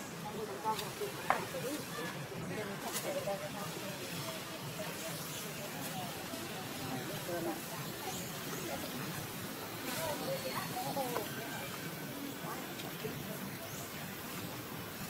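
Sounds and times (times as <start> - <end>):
background chatter of voices: 0.0 - 15.0
outdoor hiss: 0.0 - 15.0.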